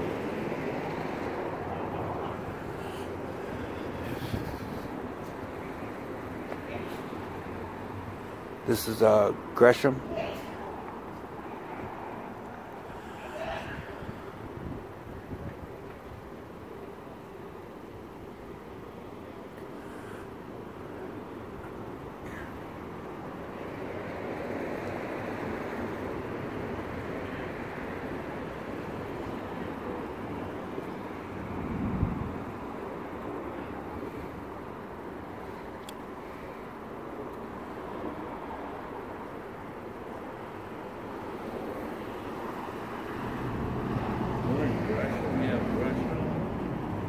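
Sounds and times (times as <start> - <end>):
traffic noise: 0.0 - 47.0.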